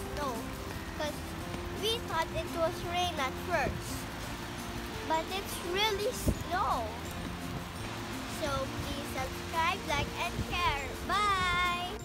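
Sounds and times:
girl speaking: 0:00.0 - 0:01.2, 0:01.8 - 0:03.9, 0:05.0 - 0:07.0, 0:08.4 - 0:12.0
background music: 0:00.0 - 0:12.0.

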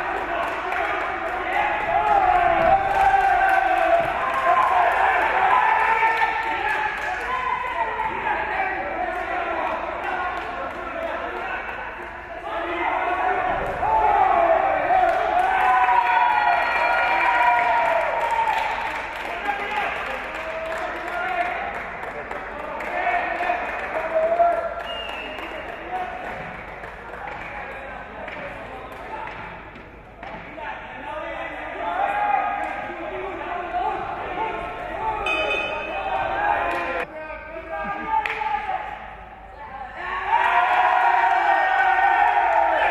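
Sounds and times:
people calling out: 0:32.0 - 0:38.6.

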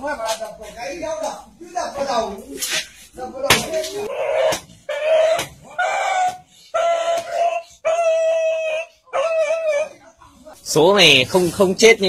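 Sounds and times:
dog wailing in distress: 0:07.2 - 0:10.0.

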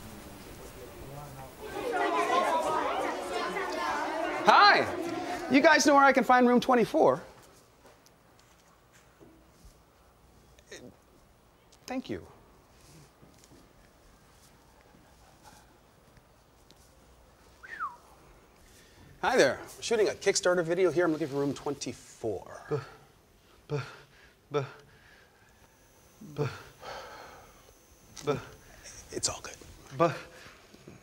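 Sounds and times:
children chattering: 0:00.0 - 0:05.9
sliding whistle: 0:17.6 - 0:18.1.

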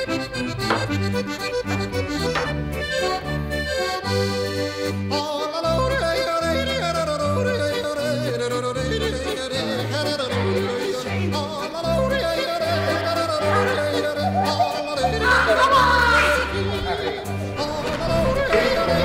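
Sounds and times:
bouncing bass line: 0:00.1 - 0:04.5
person yodeling: 0:05.1 - 0:19.0.

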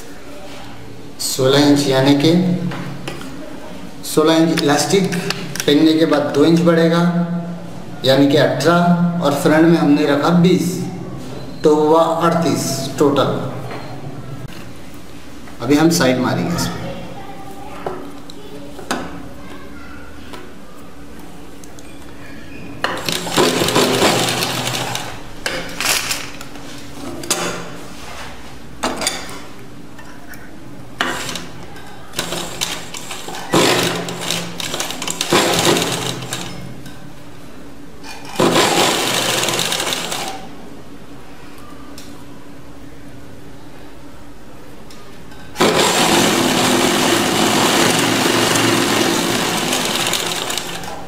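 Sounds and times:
sewing machine stitching: 0:23.0 - 0:25.2, 0:32.2 - 0:36.6, 0:38.3 - 0:40.5, 0:45.6 - 0:51.0.

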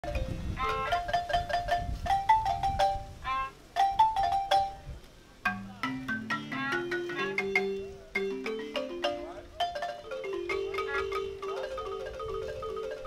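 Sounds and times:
balafon melody: 0:00.0 - 0:13.0.

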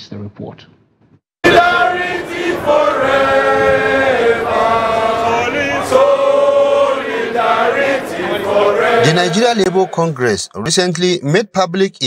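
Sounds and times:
crowd chanting in unison: 0:01.4 - 0:10.3.

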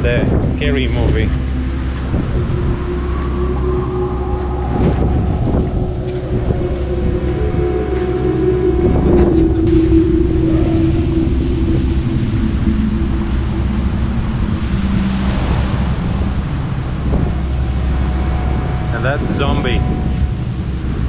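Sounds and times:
steady humming tone: 0:00.0 - 0:21.0
surf washing: 0:00.0 - 0:21.0
wind buffeting microphone: 0:00.0 - 0:21.0.

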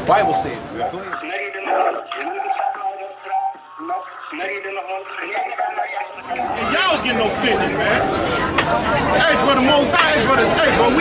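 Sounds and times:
person's voice: 0:00.0 - 0:08.0.

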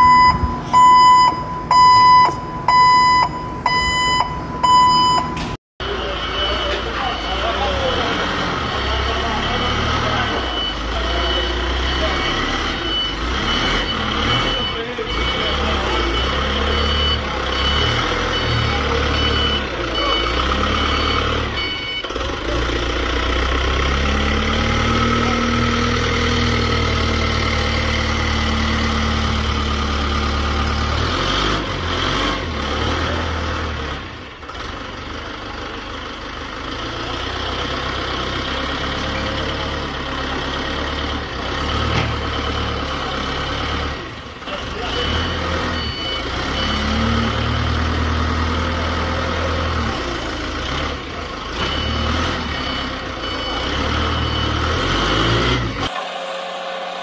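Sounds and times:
electronic beeps: 0:00.0 - 0:07.8
forklift warning beeper: 0:00.0 - 0:31.6, 0:44.5 - 0:50.5, 0:51.5 - 0:57.0
forklift engine revving: 0:00.0 - 0:57.0.

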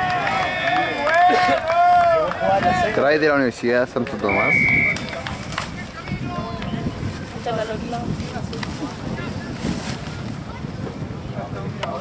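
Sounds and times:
faint voices talking: 0:00.0 - 0:12.0
wind buffeting microphone: 0:00.0 - 0:12.0.

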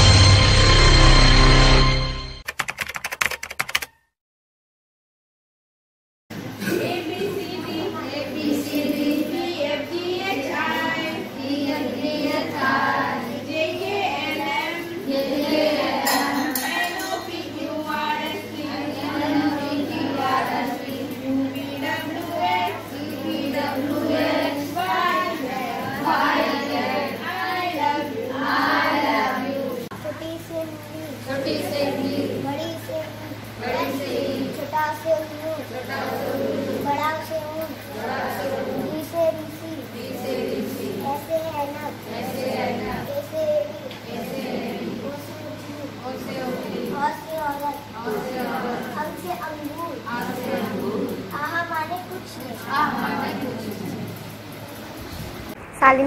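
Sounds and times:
intro music: 0:00.0 - 0:02.5
keyboard typing clicks: 0:02.4 - 0:03.9.

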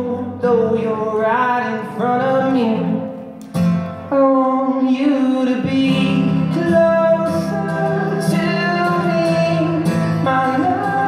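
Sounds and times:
man singing: 0:00.0 - 0:03.3, 0:04.0 - 0:11.0
acoustic guitar strumming: 0:00.0 - 0:11.0.

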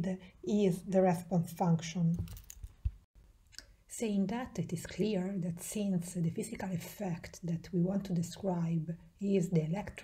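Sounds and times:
woman speaking: 0:00.0 - 0:02.3, 0:03.9 - 0:10.0.

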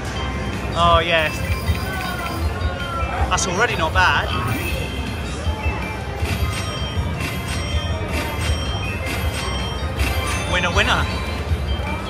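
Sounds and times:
slot machine jingle: 0:00.0 - 0:12.0.

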